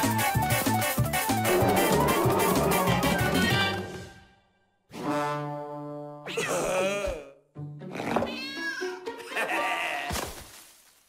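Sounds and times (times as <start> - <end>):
cartoon music: 1.2 - 4.1
gliding cartoon vocal sounds: 1.4 - 4.0.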